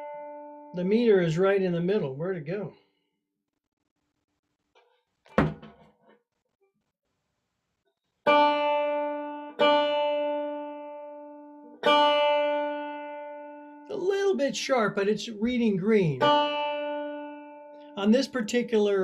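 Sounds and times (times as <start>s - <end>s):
single knock: 5.3s - 5.9s
banjo string plucked: 8.3s - 18.7s.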